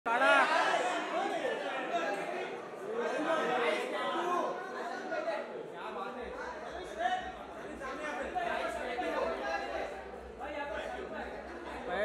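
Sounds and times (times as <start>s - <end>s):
indistinct chatter of voices: 0.1s - 12.0s.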